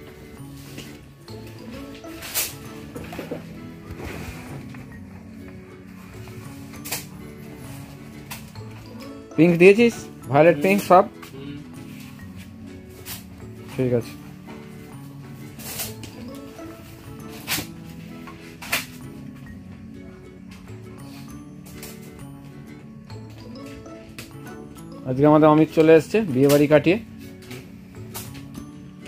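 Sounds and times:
background music with held notes: 0.0 - 29.0.

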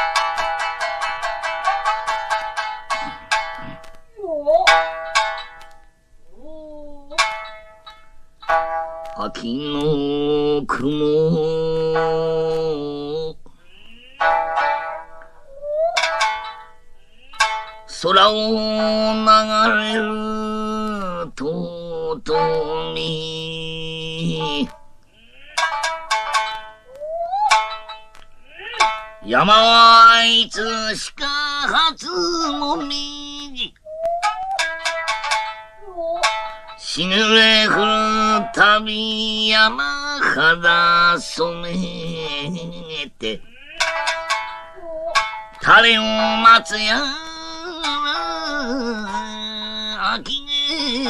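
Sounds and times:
shamisen plucked notes: 0.0 - 51.0.

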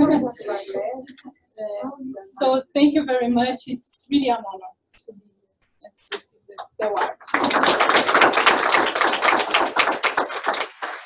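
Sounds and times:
audience applauding: 7.0 - 11.0.

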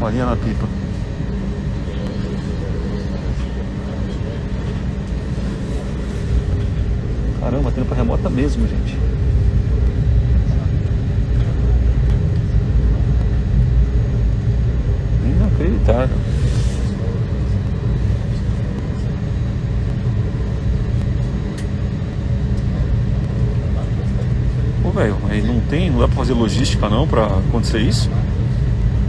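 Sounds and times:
airliner cabin rumble: 0.0 - 29.0
constant low hum: 0.0 - 29.0.

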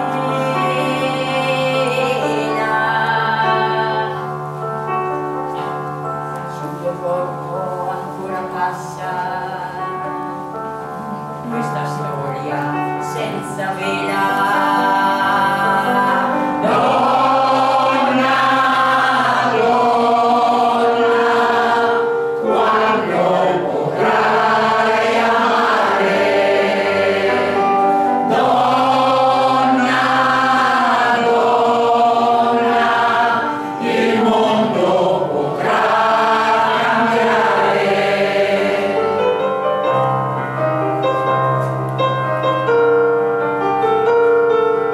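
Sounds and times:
women's choir singing: 0.0 - 5.0, 13.0 - 39.8.

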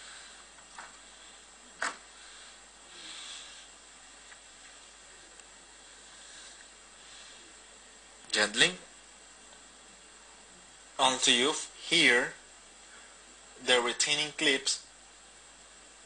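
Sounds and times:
low steady hiss: 0.0 - 16.0.

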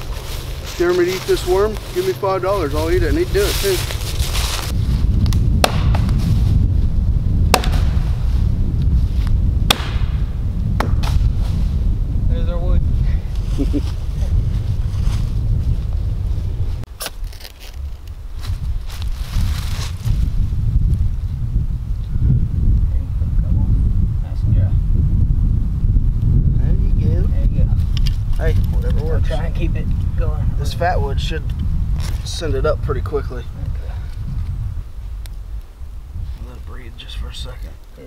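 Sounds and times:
wind rumbling on microphone: 0.0 - 38.0
dry sticks snapping: 5.2 - 6.2, 7.5 - 7.9, 9.7 - 10.1.

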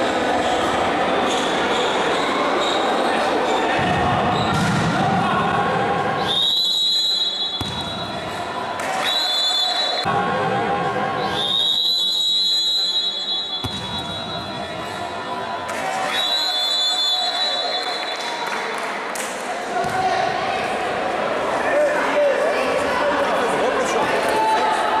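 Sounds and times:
shrill whistle: 6.2 - 8.2, 9.0 - 10.1, 11.2 - 14.6, 16.1 - 18.6.

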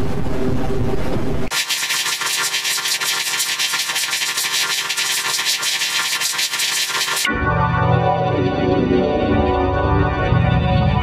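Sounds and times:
harsh hissy scratching noise: 1.5 - 7.3.

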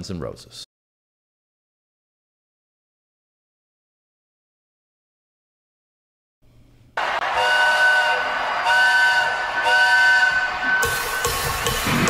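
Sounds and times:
concert crowd noise: 7.0 - 12.0
steam train whistle blasts: 7.0 - 12.0
rock band guitars and drums: 10.4 - 12.0.

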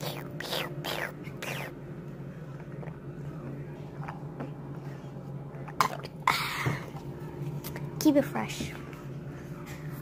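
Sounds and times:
refrigerator humming: 0.0 - 10.0.

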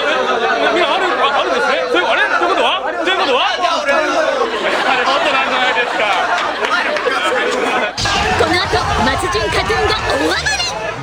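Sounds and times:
men chattering: 0.0 - 10.4.

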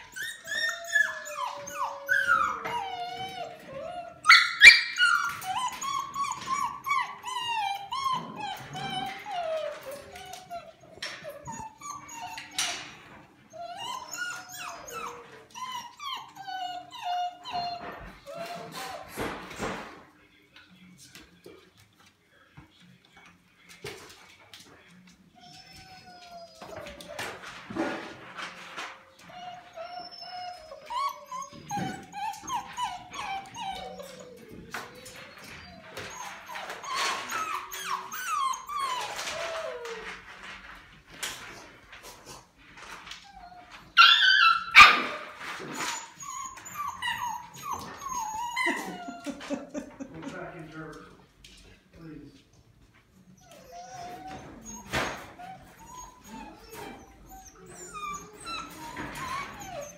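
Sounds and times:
puppies whining: 0.0 - 21.9, 22.8 - 51.5, 52.7 - 59.9.

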